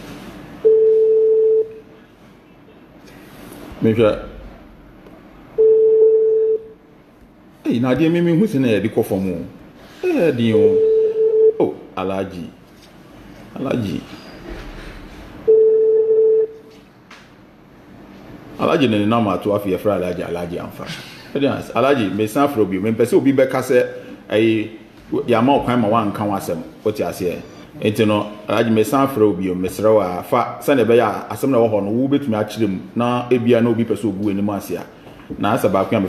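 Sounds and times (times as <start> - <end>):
telephone ringback tone: 0.6 - 1.8, 5.6 - 6.7, 10.6 - 11.6, 15.5 - 16.6.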